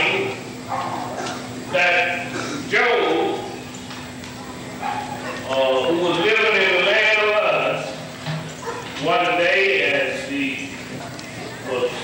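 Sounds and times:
man preaching loudly: 0:05.5 - 0:07.8.

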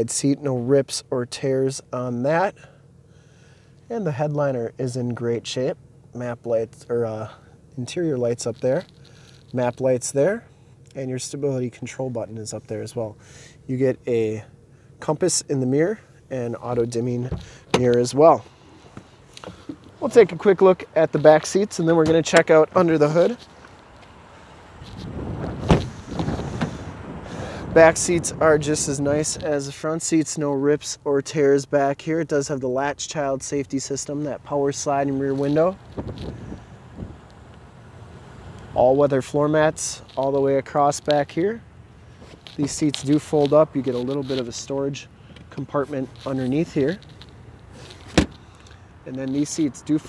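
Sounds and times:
microphone handling noise: 0:17.2 - 0:20.5, 0:24.8 - 0:29.6, 0:35.3 - 0:37.3, 0:42.1 - 0:49.6
wind buffeting microphone: 0:24.8 - 0:29.5, 0:35.8 - 0:37.3
car door knocks: 0:48.1 - 0:48.4.

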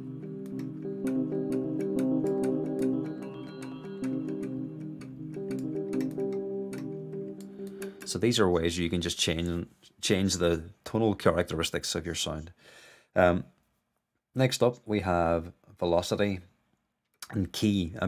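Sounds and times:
electric piano chords: 0:00.0 - 0:08.4.

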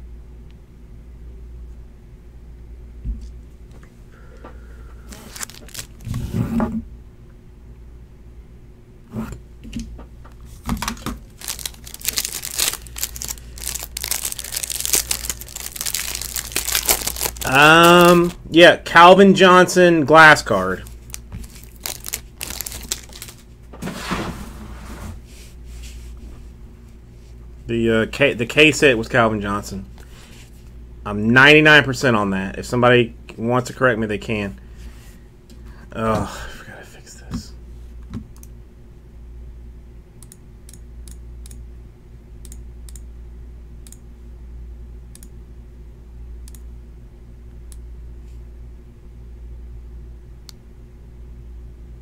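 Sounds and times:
low electrical hum: 0:00.0 - 0:52.0
plastic bag crinkling: 0:05.1 - 0:06.1, 0:10.8 - 0:18.4, 0:20.5 - 0:23.5.

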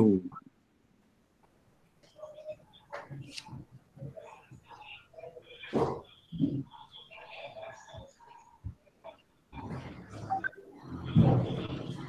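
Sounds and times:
faint muffled background noise: 0:00.0 - 0:12.0.

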